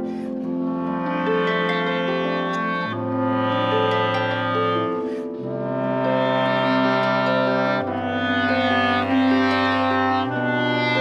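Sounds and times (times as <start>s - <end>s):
bass clarinet low notes: 0.0s - 11.0s
clarinet: 0.0s - 11.0s.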